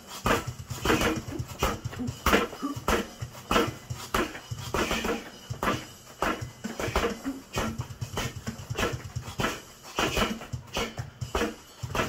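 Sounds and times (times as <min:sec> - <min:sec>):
sharp breaths: 0:00.0 - 0:12.0
gloves hitting punching bag: 0:00.2 - 0:12.0.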